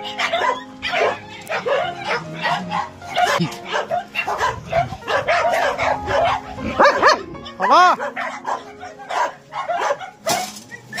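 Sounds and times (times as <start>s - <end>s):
dogs barking: 0.0s - 11.0s
dogs whining: 0.0s - 11.0s.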